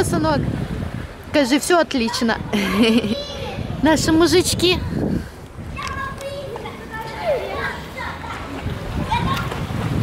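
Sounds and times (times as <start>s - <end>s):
murmur of background noise: 0.9s - 10.0s
children's voices calling: 1.4s - 10.0s.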